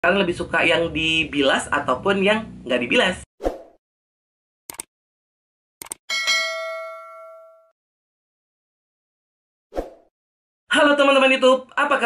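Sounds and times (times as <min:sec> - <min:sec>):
bright bell ding: 0:06.1 - 0:07.8.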